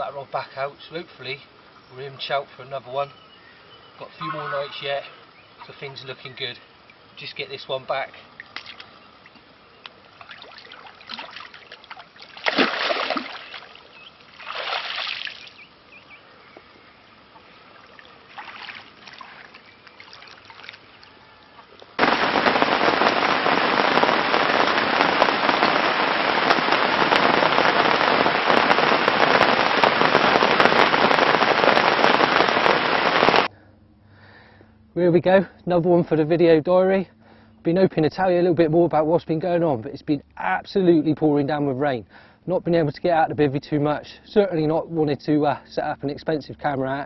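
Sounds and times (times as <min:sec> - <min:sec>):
water splashes: 0:04.3 - 0:15.6, 0:17.3 - 0:33.5
heavy rain on mud: 0:22.0 - 0:33.5.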